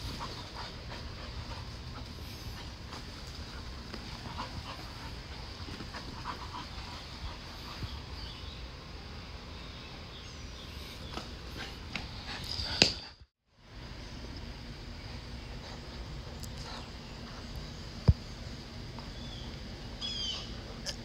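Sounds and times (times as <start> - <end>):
dog panting: 0.0 - 8.1.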